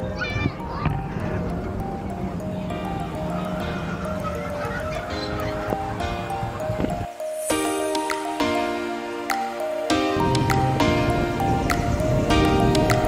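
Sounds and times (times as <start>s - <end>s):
simple melody music: 0.0s - 13.0s.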